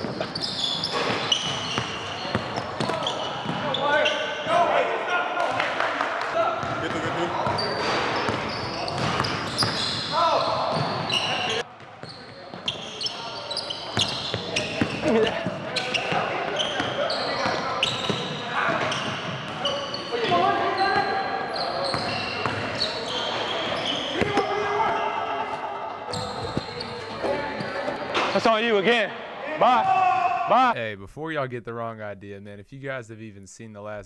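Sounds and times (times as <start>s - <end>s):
players calling out: 0.0s - 30.8s.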